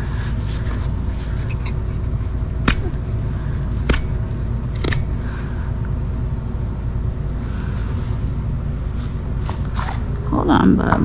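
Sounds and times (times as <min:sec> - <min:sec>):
steady low rumble: 0:00.0 - 0:11.0
hoof-trimming tool clicks: 0:03.6 - 0:05.2.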